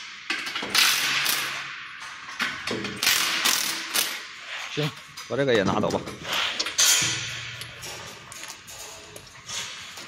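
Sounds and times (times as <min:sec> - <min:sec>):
metal parts knocking and scraping: 0:00.0 - 0:10.0
sharp metal clank: 0:06.8 - 0:08.0.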